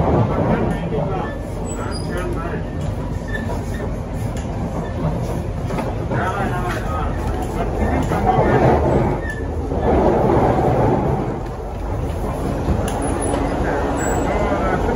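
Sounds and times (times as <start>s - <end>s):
passengers talking: 0.0s - 14.9s
train wheels rumbling on rails: 0.0s - 14.9s.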